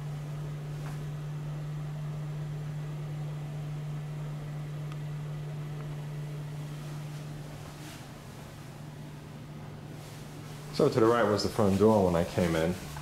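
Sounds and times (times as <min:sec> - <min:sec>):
faint room hiss: 0:00.0 - 0:13.0
low electrical hum: 0:00.0 - 0:13.0.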